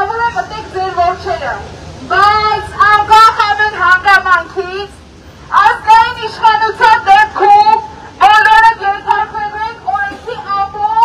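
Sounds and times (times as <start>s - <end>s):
woman shouting through a megaphone: 0.0s - 11.0s.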